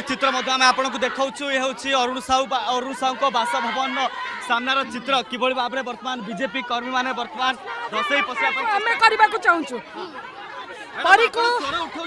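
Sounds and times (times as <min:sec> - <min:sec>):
crowd of voices talking: 0:00.0 - 0:12.0.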